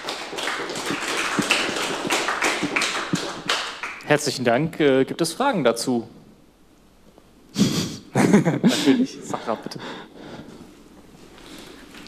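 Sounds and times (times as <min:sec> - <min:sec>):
audience applauding: 0:00.0 - 0:04.1.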